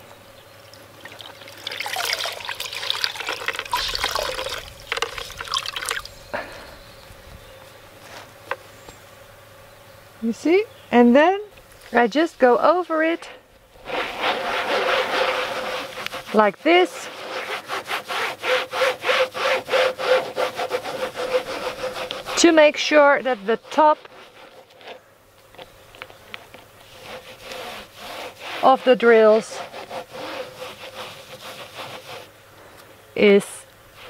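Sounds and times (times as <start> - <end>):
towel scrubbing plastic surface: 1.5 - 6.0, 13.8 - 25.0, 26.4 - 32.3
cloth rubbing over plastic: 1.7 - 6.0, 11.9 - 25.0, 26.0 - 32.3.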